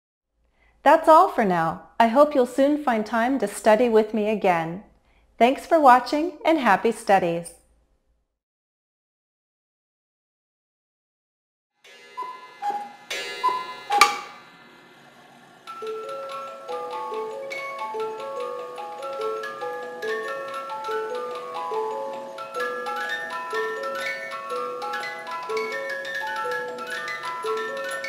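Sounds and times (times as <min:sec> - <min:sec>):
cuckoo clock calls: 0:11.9 - 0:14.4, 0:15.6 - 0:28.0
music box tinkling tune: 0:15.7 - 0:28.0.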